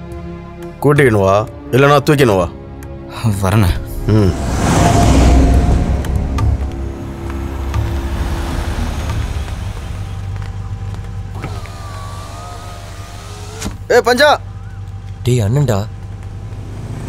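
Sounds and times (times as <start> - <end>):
car engine low rumble: 3.4 - 17.0.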